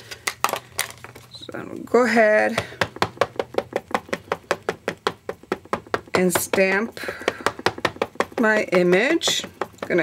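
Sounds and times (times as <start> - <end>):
ink pad tapping on stamp: 2.5 - 10.0.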